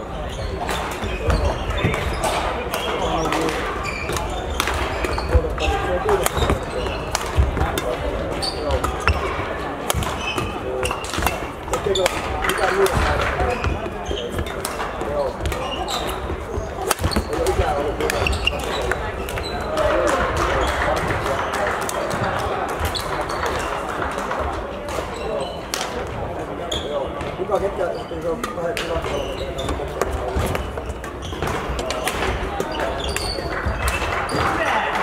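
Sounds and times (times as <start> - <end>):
background voices in hall: 0.0 - 35.0
rackets hitting shuttlecock: 0.5 - 26.2, 28.4 - 35.0.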